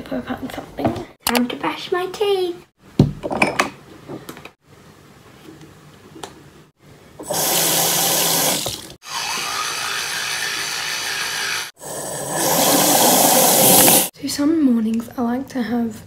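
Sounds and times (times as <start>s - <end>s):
electric toothbrush buzzing: 7.3s - 14.1s.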